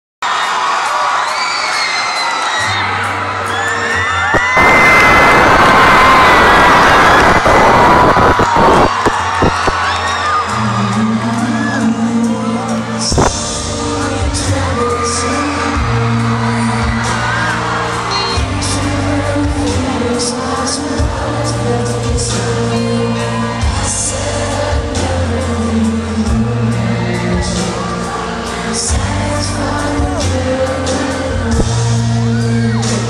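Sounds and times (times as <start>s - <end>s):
crowd screaming and cheering: 0.2s - 33.0s
live band with singer: 0.3s - 33.0s.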